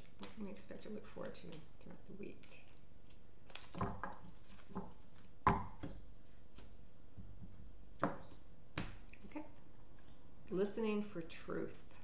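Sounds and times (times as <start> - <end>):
cards being shuffled: 0.0 - 6.8.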